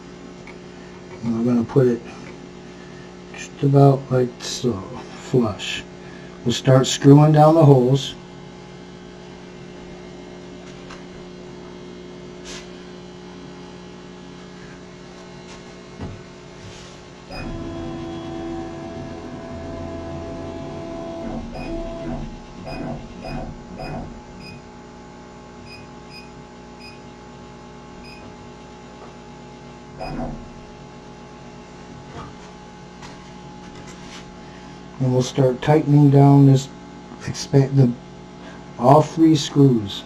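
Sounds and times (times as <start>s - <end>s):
laser cutter electrical hum: 0.0s - 34.0s
wavering mechanical whirr: 17.3s - 24.8s, 29.9s - 30.8s.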